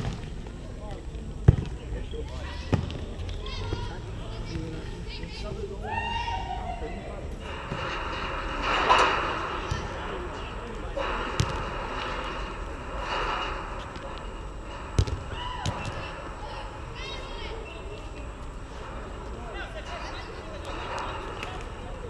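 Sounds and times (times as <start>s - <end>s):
players shouting: 8.8s - 17.9s.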